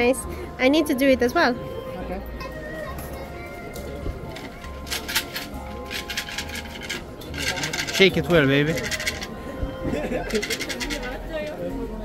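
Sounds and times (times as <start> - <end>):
background music: 0.0 - 12.0
wooden sticks rattling in box: 4.3 - 9.4, 10.0 - 11.6.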